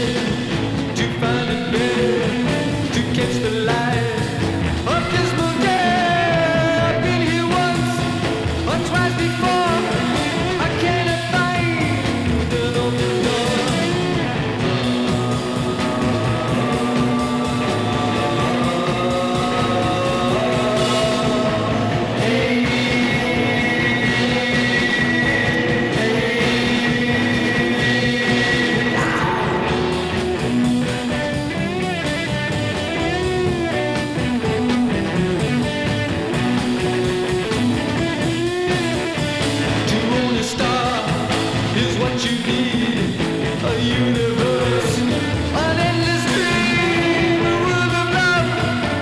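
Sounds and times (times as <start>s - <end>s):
psychedelic rock band playing: 0.0s - 49.0s.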